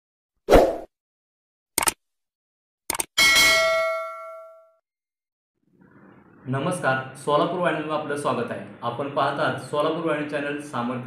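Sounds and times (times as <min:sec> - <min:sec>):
bell ding: 0:03.2 - 0:04.8.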